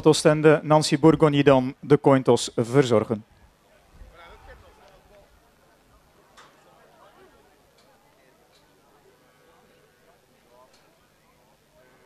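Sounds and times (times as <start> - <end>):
faint distant voices: 3.0 - 12.0.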